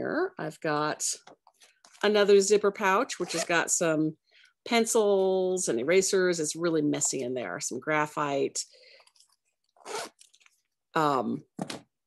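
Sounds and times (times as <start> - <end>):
fabric zipper pouch rustling: 3.2 - 3.6, 9.0 - 10.8.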